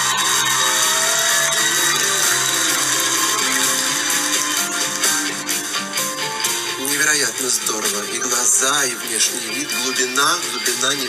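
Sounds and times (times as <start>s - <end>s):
talent show music: 0.0s - 11.0s.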